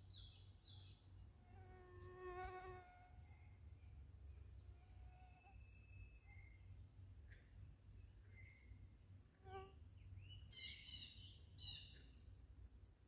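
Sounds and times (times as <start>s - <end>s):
fly buzzing: 1.6s - 2.9s.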